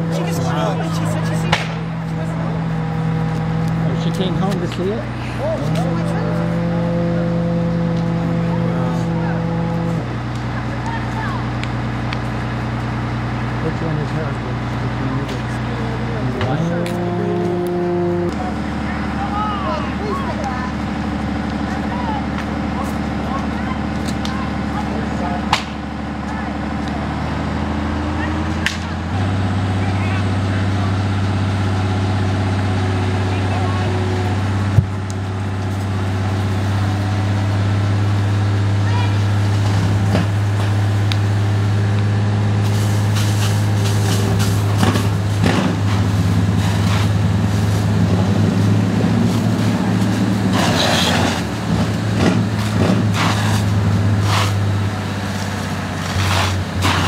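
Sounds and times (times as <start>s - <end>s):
large engine humming: 0.0s - 57.0s.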